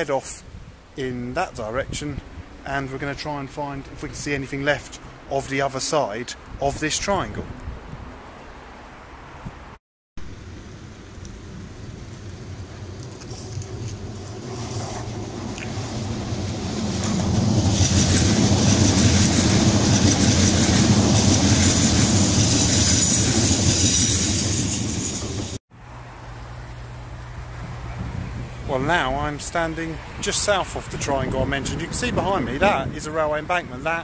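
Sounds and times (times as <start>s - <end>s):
electric train passing: 10.3s - 28.6s.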